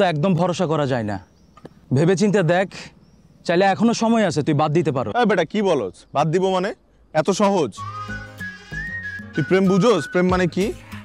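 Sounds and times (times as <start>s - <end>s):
man speaking: 1.9s - 7.8s, 9.4s - 10.8s
high whistled tune: 7.8s - 11.0s.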